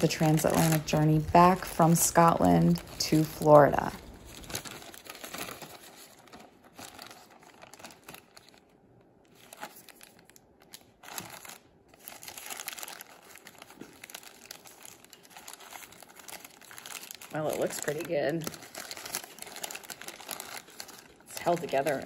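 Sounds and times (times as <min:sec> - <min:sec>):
paper wrapping rustling: 0:00.0 - 0:22.0
plastic bag crinkling: 0:00.0 - 0:22.0.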